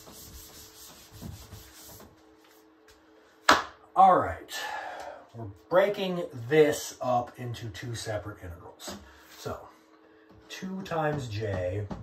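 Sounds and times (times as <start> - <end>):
eraser rubbing on whiteboard: 0.0 - 2.1.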